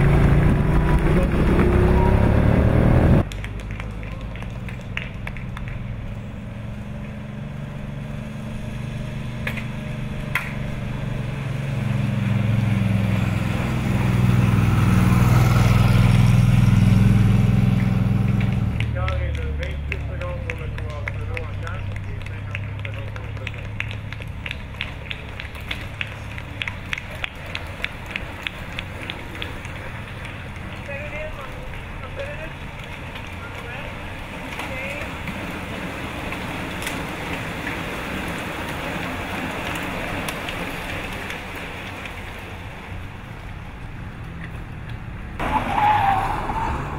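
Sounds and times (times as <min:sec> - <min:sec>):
vehicle engine passing: 0:00.0 - 0:46.9
voices at roadside: 0:00.0 - 0:46.9
bicycles clicking past: 0:03.2 - 0:46.9.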